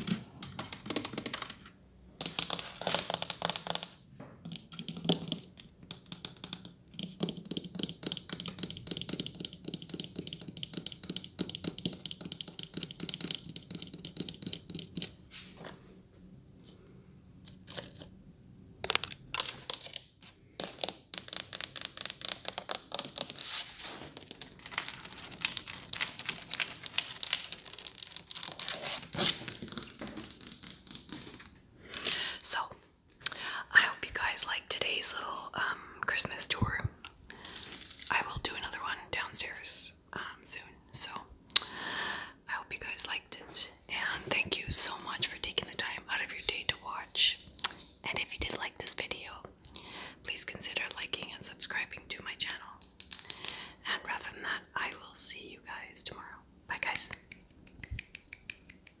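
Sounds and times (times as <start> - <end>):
close whispering: 32.2 - 32.8, 33.4 - 37.0, 38.1 - 41.2, 42.5 - 47.4, 50.3 - 52.8, 53.8 - 57.3.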